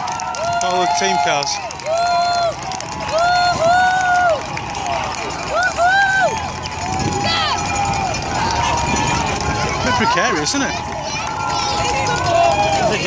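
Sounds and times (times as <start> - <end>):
crowd shouting and whooping: 0.0 - 13.0.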